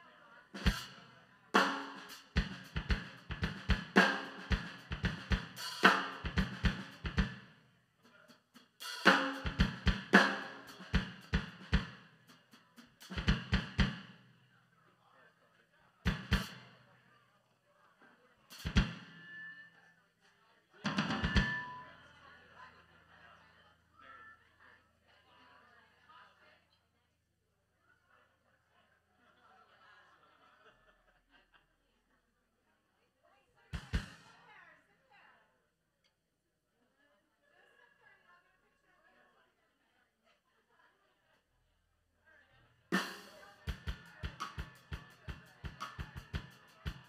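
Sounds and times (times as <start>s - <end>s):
drum kit hits: 1.6s - 7.4s, 8.8s - 12.0s, 13.0s - 14.1s, 16.1s - 16.6s, 18.6s - 19.5s, 20.9s - 21.8s, 33.8s - 34.2s.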